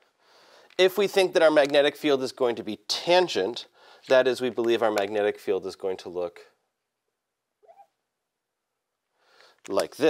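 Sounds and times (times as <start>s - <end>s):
marker squeaking on glass: 7.6s - 8.0s.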